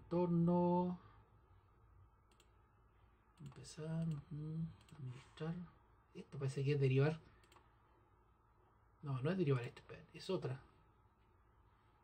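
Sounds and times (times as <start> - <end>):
faint computer mouse clicks: 2.3 - 2.6, 7.4 - 7.7.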